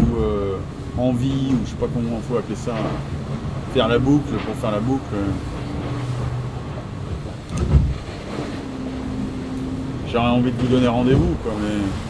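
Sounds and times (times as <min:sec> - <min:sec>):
boat cabin background noise: 0:00.0 - 0:12.0
low thump: 0:05.6 - 0:08.6.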